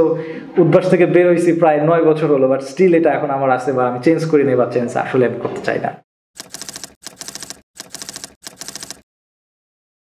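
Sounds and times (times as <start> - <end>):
rapid keystroke clicks: 6.4 - 9.0.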